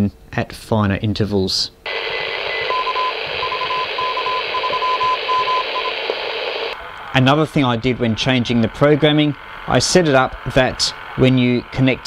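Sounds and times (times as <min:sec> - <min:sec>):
morse code tone: 0:01.9 - 0:06.8
radio band noise hiss: 0:01.9 - 0:12.0.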